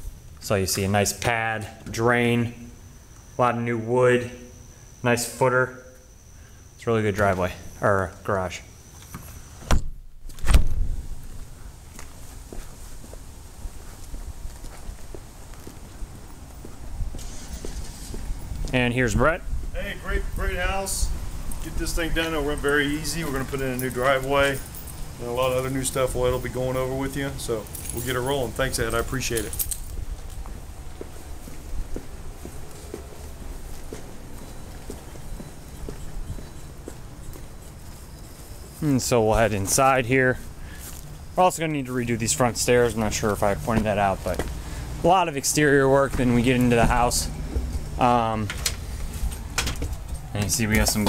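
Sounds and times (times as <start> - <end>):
outdoor background noise: 0.0 - 51.0
footsteps on asphalt: 11.2 - 18.8, 30.0 - 41.2, 42.8 - 44.9.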